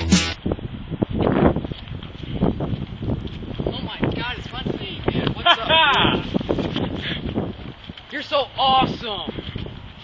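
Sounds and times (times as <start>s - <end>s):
wind buffeting microphone: 0.4s - 10.0s.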